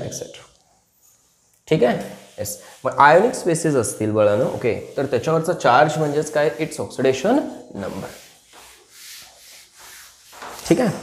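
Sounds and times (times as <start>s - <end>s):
duster rubbing chalkboard: 0.7s - 11.0s.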